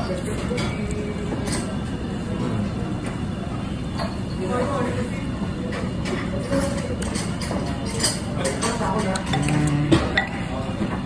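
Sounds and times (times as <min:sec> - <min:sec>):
restaurant background rumble: 0:00.0 - 0:11.0.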